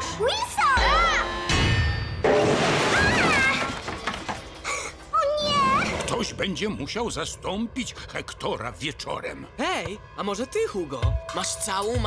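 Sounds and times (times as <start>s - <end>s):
rubbish crashing and clattering: 1.7s - 4.7s.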